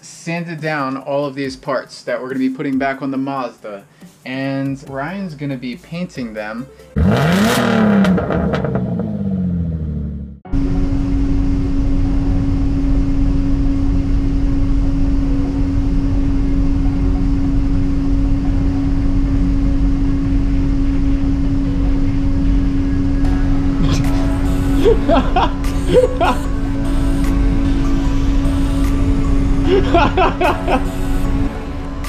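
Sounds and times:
engine rev sound effect: 7.0s - 21.5s, 22.2s - 32.0s
ventilation fans whooshing hum: 10.6s - 32.0s.

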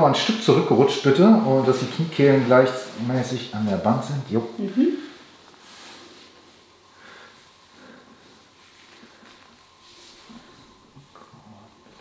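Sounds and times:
faint breathing: 6.8s - 11.8s.

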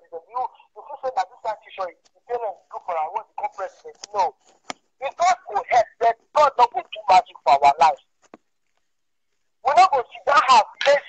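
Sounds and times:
person talking over video call: 0.0s - 8.4s, 9.6s - 11.0s.

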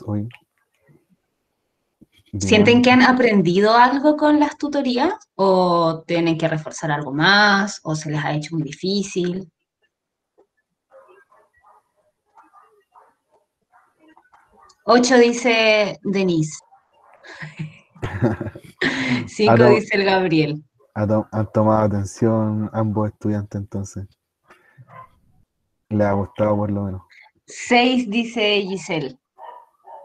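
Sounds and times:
dog barking faintly: 10.9s - 14.8s, 19.5s - 19.8s, 21.0s - 24.0s, 24.8s - 25.2s, 25.9s - 27.0s, 29.4s - 30.0s
faint short vocal sounds: 18.0s - 19.8s, 21.0s - 24.0s.

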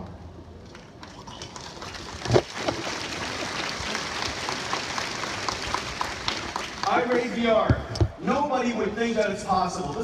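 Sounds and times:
audience applauding: 0.7s - 7.2s.

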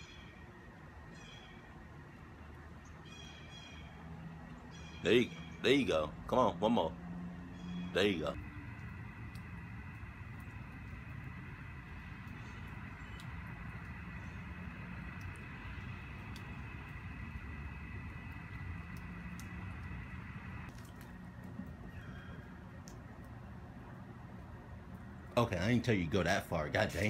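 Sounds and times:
faint steady tone: 7.4s - 21.1s
low rumble: 8.3s - 25.3s
faint scattered ticks: 8.4s - 22.2s.

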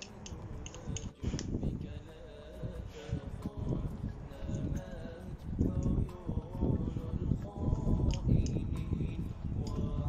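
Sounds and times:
wind rumbling on microphone: 0.1s - 10.0s.

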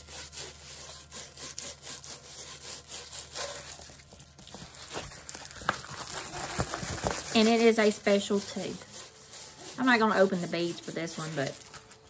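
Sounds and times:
canvas rustling and crinkling: 2.7s - 12.0s.

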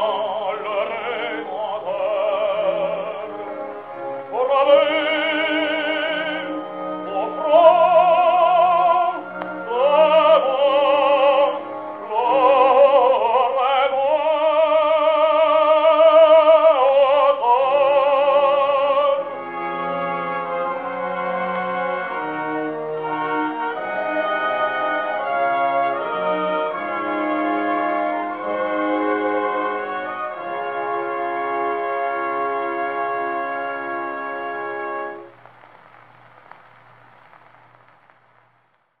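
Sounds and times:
orchestral music on gramophone: 0.0s - 38.8s
record surface hiss: 0.0s - 39.0s.

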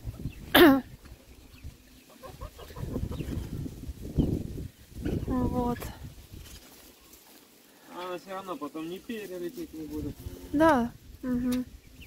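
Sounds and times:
chickens clucking: 0.0s - 10.8s.

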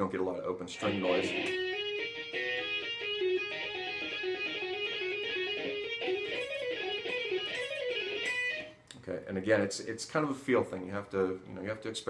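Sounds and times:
electric guitar legato run: 0.8s - 8.4s.

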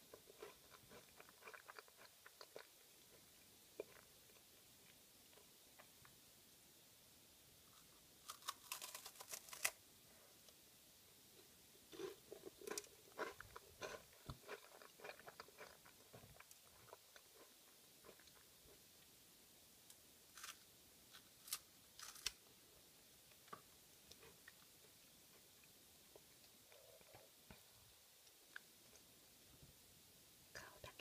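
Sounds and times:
chewing with small crackles: 0.0s - 6.2s, 11.4s - 19.1s, 23.2s - 29.1s
crisp wafer crunching: 8.2s - 9.8s, 21.2s - 22.4s.

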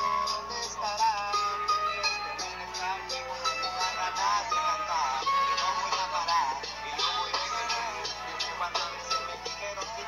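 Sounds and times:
man rapping over a beat: 0.2s - 1.5s, 2.5s - 10.0s.

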